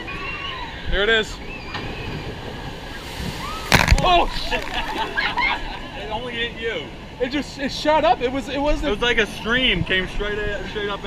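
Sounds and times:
water rushing in channel: 0:02.0 - 0:06.4
loud water splash: 0:02.1 - 0:06.0.

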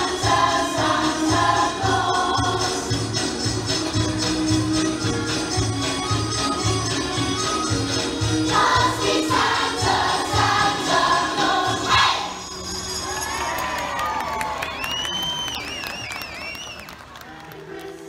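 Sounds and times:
children's choir singing: 0:00.0 - 0:03.0, 0:08.4 - 0:12.4
crowd cheering: 0:13.0 - 0:17.9.

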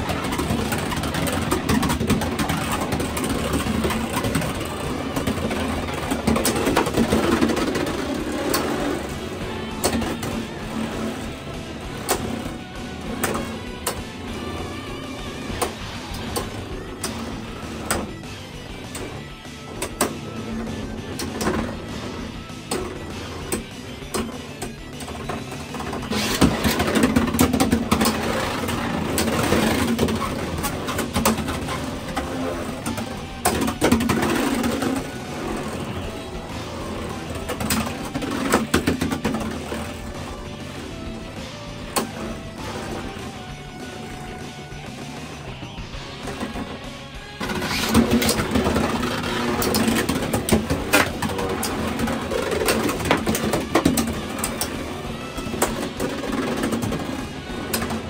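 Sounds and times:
background music: 0:00.0 - 0:58.0
spinning tops whirring and clacking: 0:00.0 - 0:58.0.

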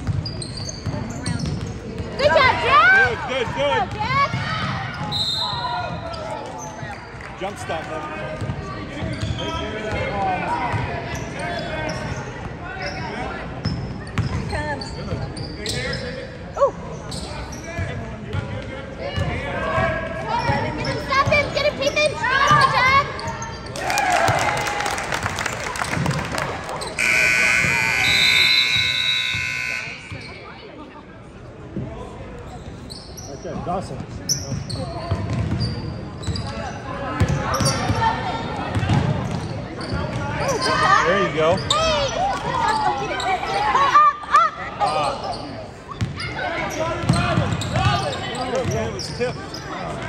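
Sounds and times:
crowd voices: 0:00.0 - 0:50.0
scoreboard buzzer: 0:27.0 - 0:30.4.

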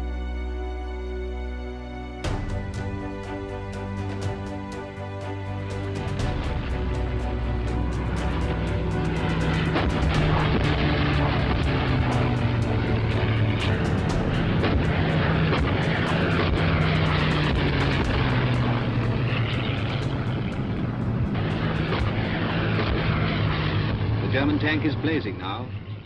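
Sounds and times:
propeller aircraft droning past: 0:00.0 - 0:26.0
film soundtrack crackle and clicks: 0:02.2 - 0:25.3.

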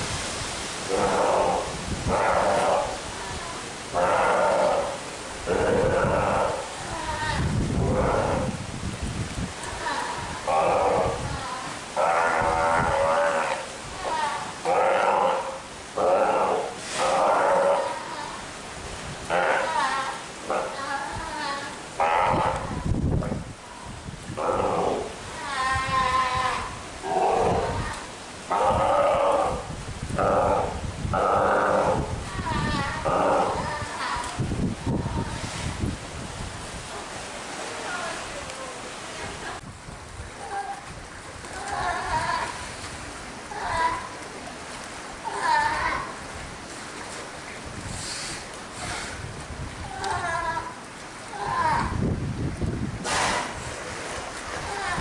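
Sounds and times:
sea lion calling: 0:00.8 - 0:08.6, 0:09.6 - 0:18.5, 0:19.2 - 0:34.4.

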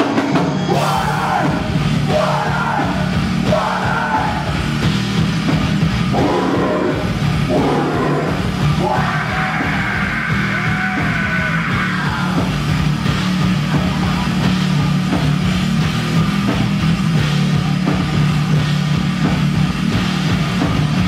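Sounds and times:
distorted guitars: 0:00.0 - 0:21.0
drum kit: 0:00.0 - 0:21.0
singer yelling: 0:00.6 - 0:04.6, 0:06.1 - 0:12.6.

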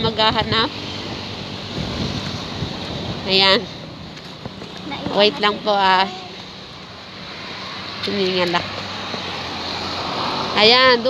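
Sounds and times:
vehicle road noise: 0:00.0 - 0:11.0.

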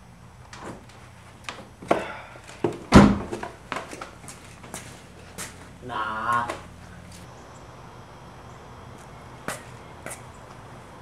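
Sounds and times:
heavy door thump: 0:02.9 - 0:03.4.

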